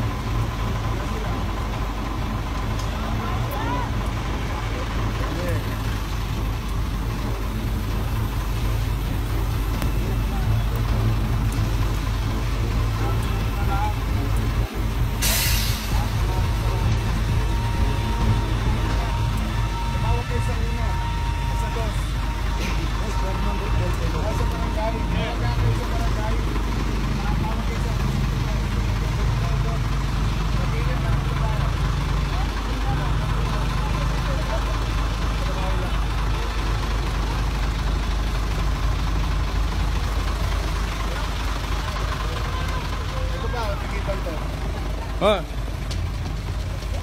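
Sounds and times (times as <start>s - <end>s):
vehicle engine idling: 0.0s - 47.0s
people talking: 0.7s - 1.7s, 2.8s - 6.2s, 9.5s - 12.2s, 12.8s - 38.0s, 40.2s - 47.0s.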